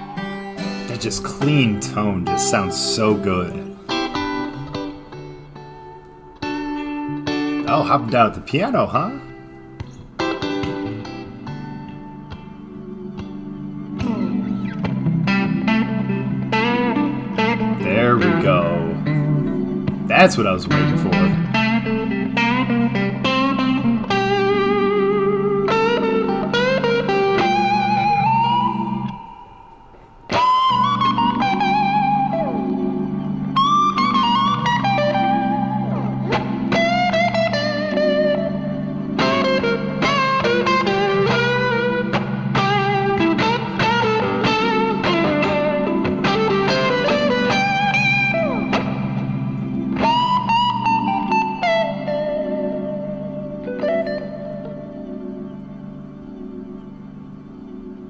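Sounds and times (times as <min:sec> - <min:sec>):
clean electric guitar solo: 0:00.0 - 0:58.0
sustained organ chords: 0:00.0 - 0:58.0.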